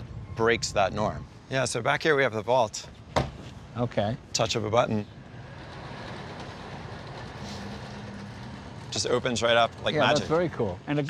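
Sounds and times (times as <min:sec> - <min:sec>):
motorized cover rolling hum: 0:05.1 - 0:10.8.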